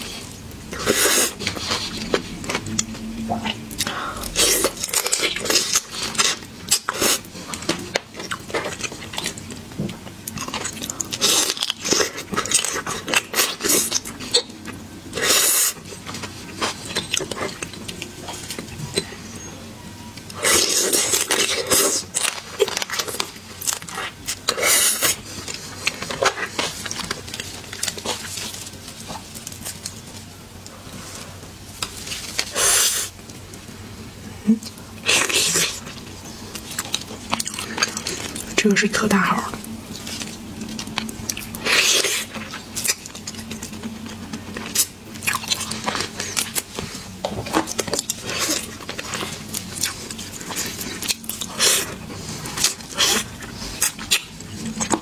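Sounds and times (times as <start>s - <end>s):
person chewing wetly: 0.0s - 19.3s, 20.2s - 30.7s, 34.6s - 38.6s, 39.6s - 55.0s.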